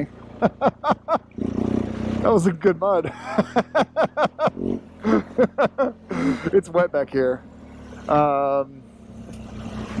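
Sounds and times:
motorcycle engine hum: 0.0s - 10.0s
man laughing: 0.3s - 1.4s, 2.9s - 6.8s.

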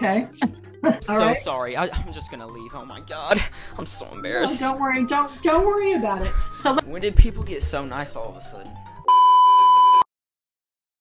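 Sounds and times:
loud electronic beep: 9.1s - 10.0s.

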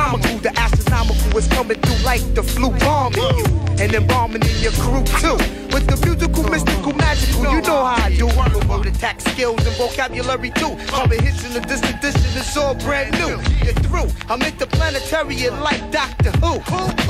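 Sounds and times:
rapping over a beat: 0.0s - 17.0s.

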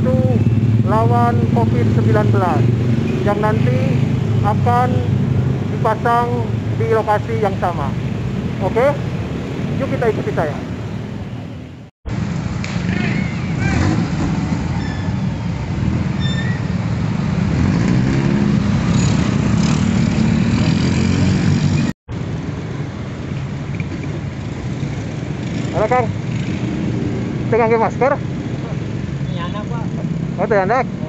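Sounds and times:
scooters and motorcycles passing: 0.0s - 31.0s.

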